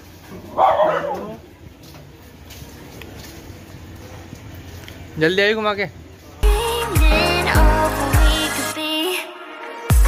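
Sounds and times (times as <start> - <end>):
dog barking: 0.5 - 1.4.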